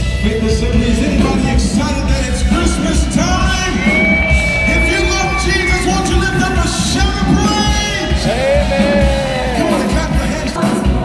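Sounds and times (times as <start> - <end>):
amplified singing with band: 0.4 - 11.0.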